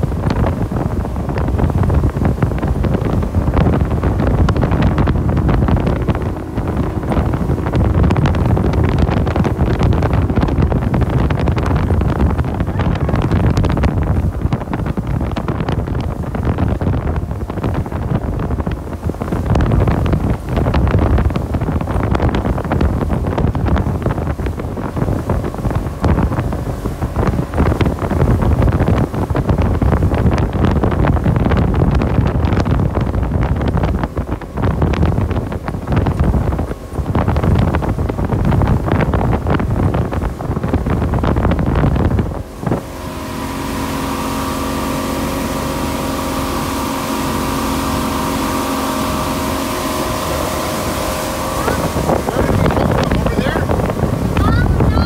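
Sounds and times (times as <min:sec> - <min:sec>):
motorboat engine drone: 0:00.0 - 0:55.0
wind buffeting microphone: 0:00.0 - 0:55.0.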